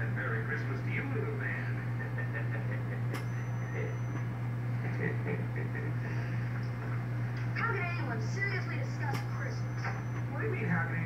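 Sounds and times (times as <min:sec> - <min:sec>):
steady low hum: 0:00.0 - 0:11.0
television dialogue: 0:00.0 - 0:11.0
sharp click: 0:03.1 - 0:03.3, 0:09.1 - 0:09.3
thin high tone: 0:03.2 - 0:04.3.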